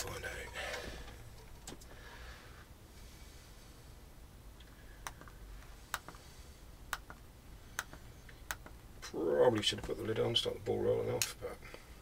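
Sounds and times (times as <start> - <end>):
small handling noises: 0.0 - 2.2.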